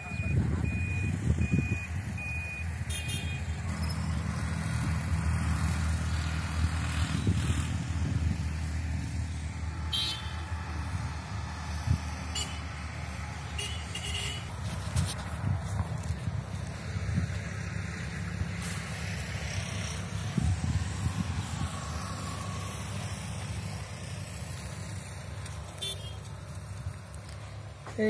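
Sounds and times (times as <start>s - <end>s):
short even beeps: 0.0s - 3.4s
vehicle engine running: 3.2s - 28.0s.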